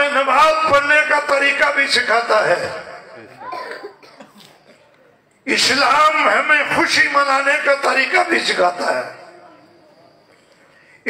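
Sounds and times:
faint cough-like vocal sound: 3.4 - 5.0.

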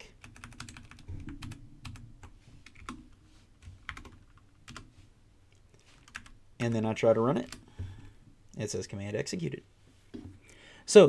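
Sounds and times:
computer keyboard keys clicking: 0.2 - 2.0, 3.8 - 4.8, 6.0 - 6.3.

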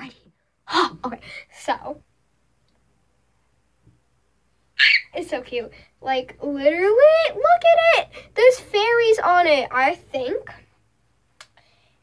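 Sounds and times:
girl squealing: 4.8 - 5.2.

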